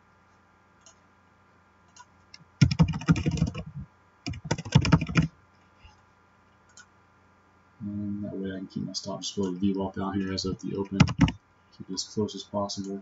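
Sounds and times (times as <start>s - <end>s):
computer keyboard typing: 1.9s - 3.7s, 4.3s - 5.3s, 10.4s - 11.4s
faint clicks: 6.6s - 6.9s.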